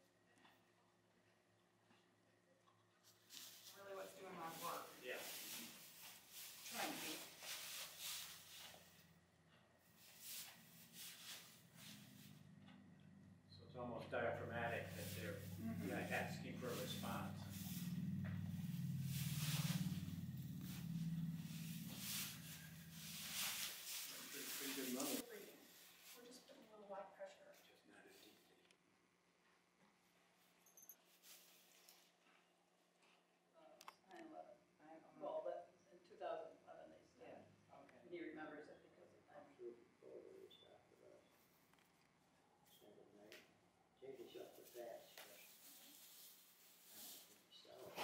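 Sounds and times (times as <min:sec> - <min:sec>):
straw bedding rustling: 0:03.3 - 0:08.9, 0:10.0 - 0:12.3, 0:14.8 - 0:26.3, 0:44.6 - 0:47.8
quiet indistinct voices: 0:13.5 - 0:22.9, 0:24.0 - 0:28.8, 0:46.9 - 0:48.0.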